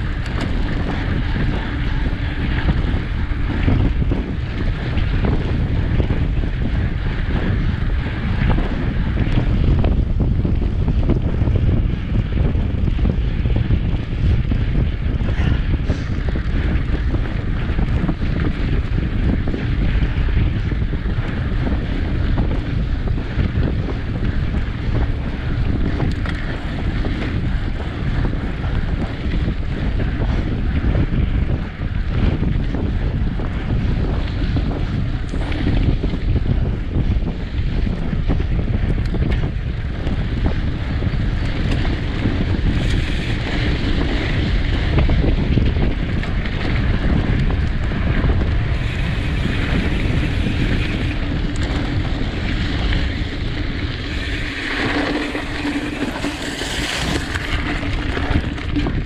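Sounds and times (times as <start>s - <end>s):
bicycle tyres on gravel: 0.0s - 59.0s
wind buffeting microphone: 0.0s - 59.0s.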